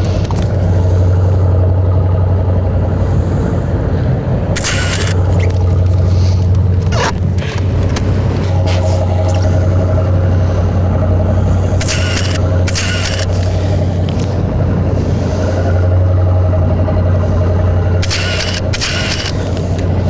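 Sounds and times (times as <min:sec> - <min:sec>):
motorboat engine droning: 0:00.0 - 0:20.0.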